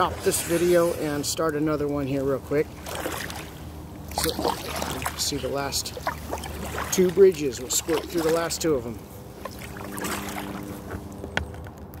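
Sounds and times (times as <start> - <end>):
paddle swishing in water: 0.0 - 11.4.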